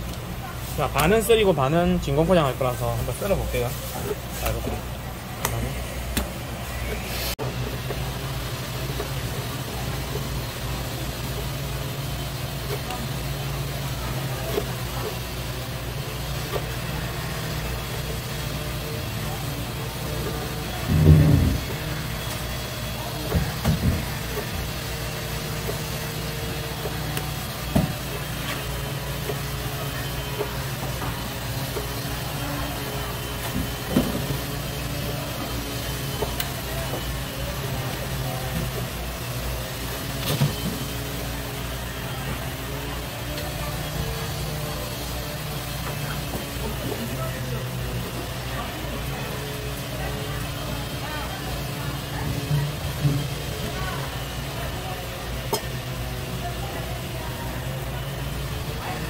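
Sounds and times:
low machine hum: 0.0s - 59.0s.

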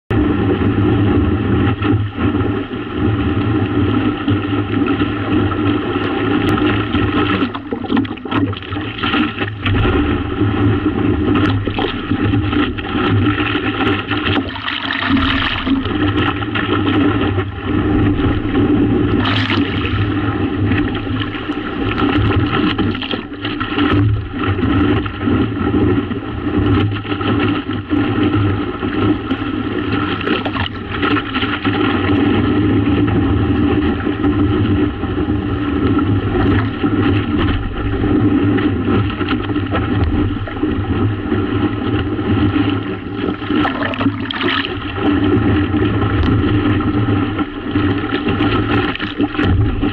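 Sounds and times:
water rushing along a hull: 0.1s - 49.9s
wind buffeting microphone: 0.1s - 49.9s.

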